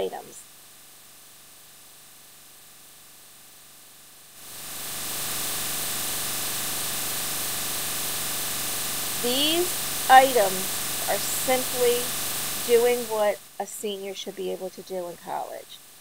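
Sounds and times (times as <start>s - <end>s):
faint steady hiss: 0.0s - 16.0s
rushing air like a fan: 4.4s - 13.1s.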